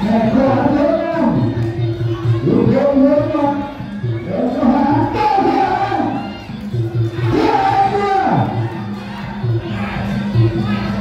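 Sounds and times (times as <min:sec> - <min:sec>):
boxing ring music with drum beat: 0:00.0 - 0:11.0
crowd yelling and cheering: 0:00.0 - 0:11.0.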